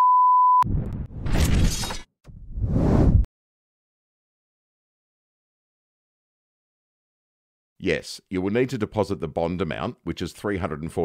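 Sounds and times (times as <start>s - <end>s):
electronic beep tone: 0.0s - 0.6s
crashing shatter sound effect: 1.2s - 2.1s.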